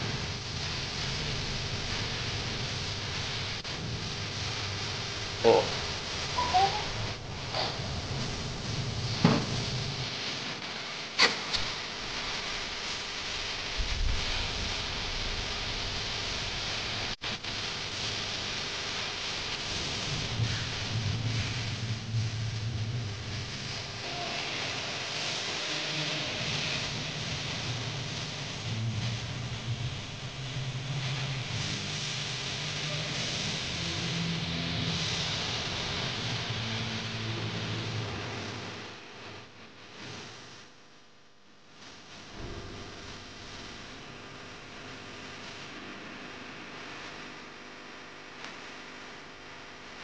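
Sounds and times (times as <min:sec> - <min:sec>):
welding arc crackling and hissing: 0:00.0 - 0:50.0.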